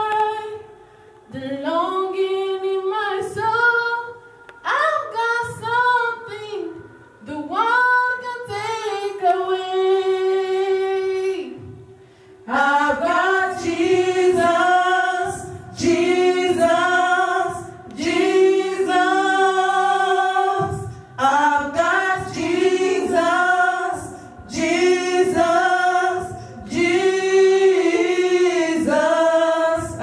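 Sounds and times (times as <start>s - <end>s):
women's choir singing gospel: 0.0s - 30.0s.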